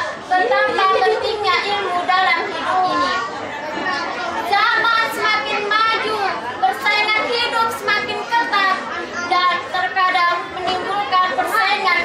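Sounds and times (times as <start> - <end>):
girl giving a speech: 0.0 - 12.0.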